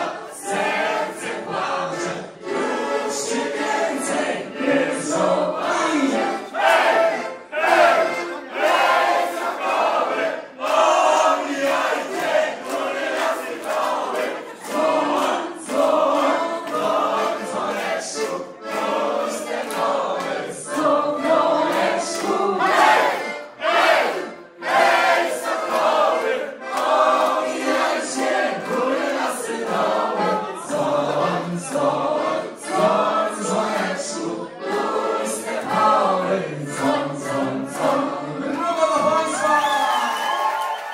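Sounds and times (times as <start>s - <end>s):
group singing loudly: 0.0s - 39.5s.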